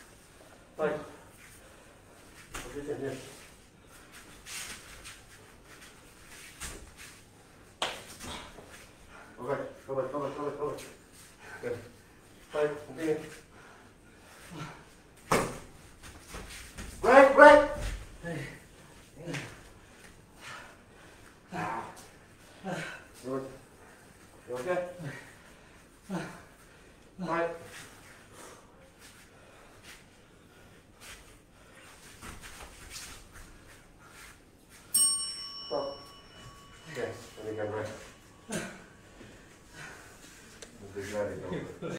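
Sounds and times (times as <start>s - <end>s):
bright bell ding: 34.9s - 38.9s.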